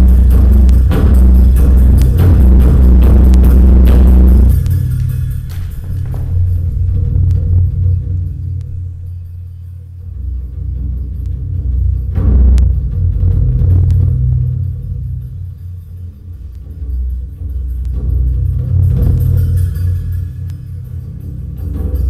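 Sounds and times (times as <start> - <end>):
dark rumbling performance music: 0.0 - 22.0
deep pulsing bass drone: 0.0 - 22.0.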